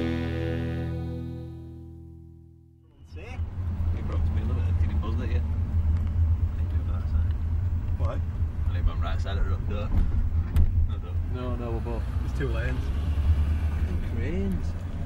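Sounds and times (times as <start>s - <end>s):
music: 0.0s - 2.7s
car engine and road rumble: 2.8s - 15.0s.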